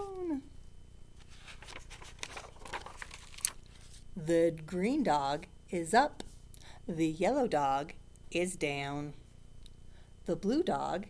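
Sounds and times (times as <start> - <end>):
book pages rustling: 1.2 - 4.1.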